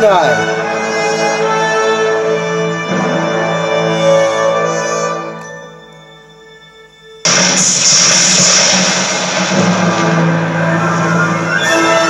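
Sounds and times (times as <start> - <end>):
thunder rumble: 7.3 - 12.0.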